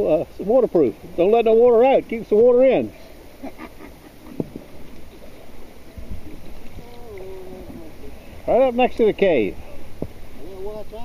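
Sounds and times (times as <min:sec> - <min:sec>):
shallow water sloshing: 0:00.4 - 0:11.0
wind on microphone: 0:05.9 - 0:08.4.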